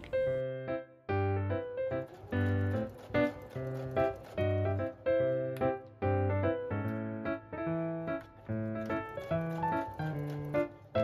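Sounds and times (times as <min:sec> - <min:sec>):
light keyboard tune: 0:00.0 - 0:11.0.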